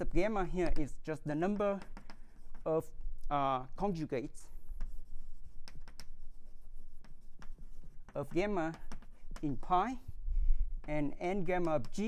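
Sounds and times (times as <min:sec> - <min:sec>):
chalk tapping on blackboard: 0:00.2 - 0:03.0, 0:03.6 - 0:10.2, 0:10.8 - 0:12.0.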